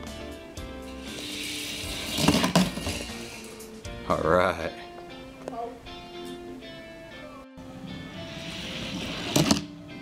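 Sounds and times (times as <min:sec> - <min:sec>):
background music: 0:00.0 - 0:10.0
toy car rolling down plastic track: 0:01.1 - 0:03.4, 0:08.4 - 0:09.7.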